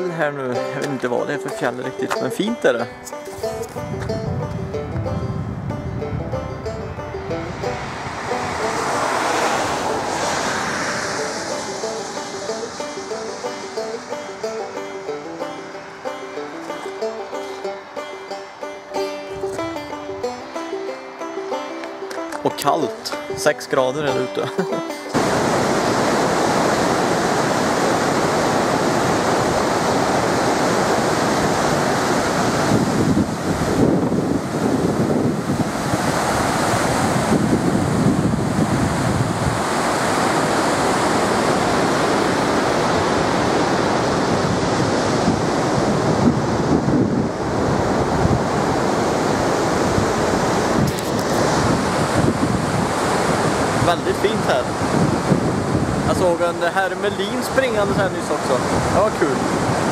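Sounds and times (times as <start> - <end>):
wind buffeting microphone: 1.1 - 22.5, 25.1 - 59.9
water rushing over rocks: 7.5 - 18.6, 25.1 - 59.9.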